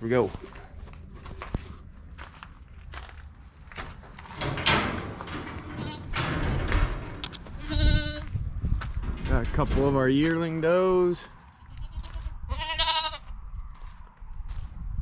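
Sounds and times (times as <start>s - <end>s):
footsteps: 0.0s - 12.5s, 13.2s - 15.0s
knocks and rustling: 0.9s - 10.7s
door opening: 3.7s - 10.4s
goat bleating: 7.6s - 8.3s, 11.6s - 13.2s.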